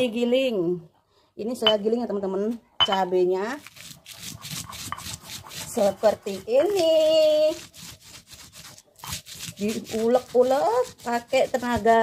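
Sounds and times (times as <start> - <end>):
stone pestle grinding in mortar: 3.6 - 12.0.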